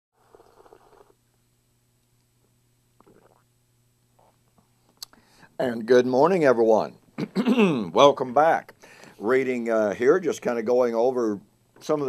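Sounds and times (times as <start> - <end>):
person swallowing: 3.0 - 3.5, 7.2 - 7.9.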